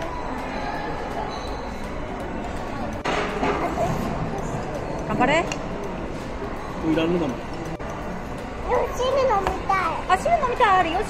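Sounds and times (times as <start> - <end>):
steady background noise: 0.0 - 11.0
girl speaking: 8.7 - 10.1.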